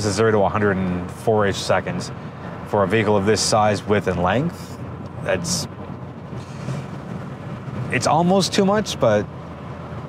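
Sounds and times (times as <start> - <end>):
car engine running gently: 0.0 - 10.0
road and wind noise: 0.0 - 10.0.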